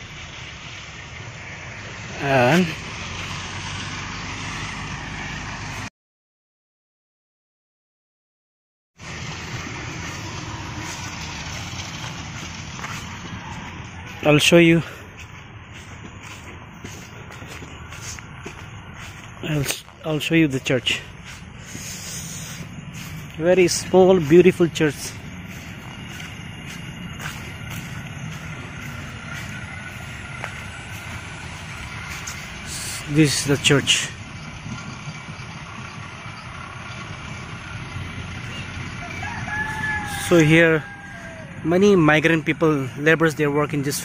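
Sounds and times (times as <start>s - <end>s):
outdoor background noise: 0.0s - 5.9s, 9.0s - 44.0s
constant low hum: 9.0s - 41.7s.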